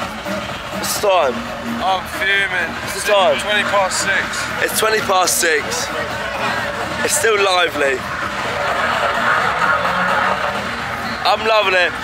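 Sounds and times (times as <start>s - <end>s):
crowd noise: 0.0s - 12.0s
distant dance music: 0.0s - 12.0s.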